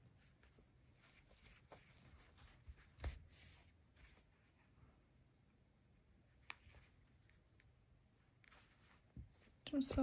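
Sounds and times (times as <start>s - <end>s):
yarn rustling through fabric: 0.0s - 5.0s.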